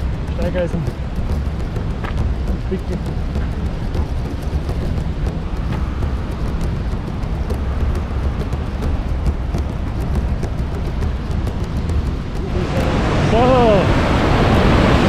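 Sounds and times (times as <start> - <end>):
footsteps on gravel: 0.0 - 13.7
fast river rushing: 0.0 - 15.0
rushing water: 0.0 - 15.0
wind on microphone: 0.0 - 15.0.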